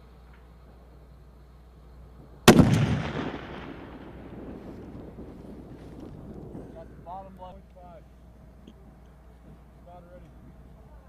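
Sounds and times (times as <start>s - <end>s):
rifle shot: 2.4s - 5.6s.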